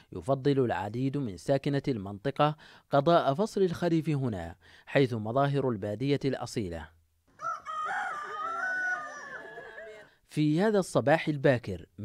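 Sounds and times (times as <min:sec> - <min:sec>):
rooster crowing: 0:07.3 - 0:10.1.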